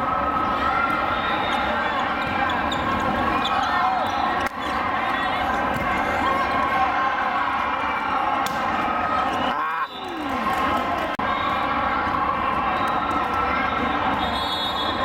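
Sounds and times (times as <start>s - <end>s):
crowd of voices: 0.0s - 15.0s
shoes squeaking on court: 2.0s - 4.8s
volleyball hits: 8.4s - 8.9s.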